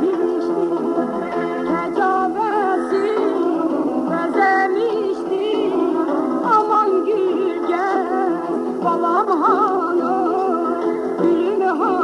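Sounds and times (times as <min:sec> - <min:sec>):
instrumental accompaniment: 0:00.0 - 0:12.0
woman singing folk song: 0:00.0 - 0:12.0.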